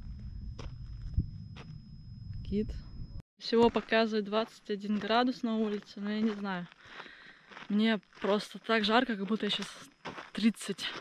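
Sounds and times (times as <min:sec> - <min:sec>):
footsteps on sand and gravel: 0:00.0 - 0:01.8, 0:03.4 - 0:11.0
steady low rumble: 0:00.0 - 0:03.2.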